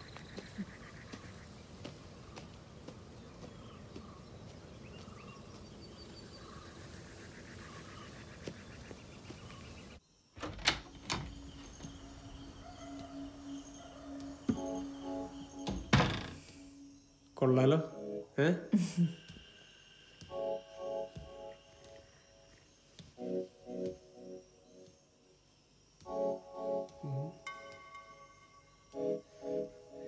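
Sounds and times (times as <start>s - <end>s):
steady outdoor hiss: 0.0s - 30.0s
faint chirps: 11.2s - 26.0s, 26.8s - 30.0s
music with low note: 26.1s - 30.0s.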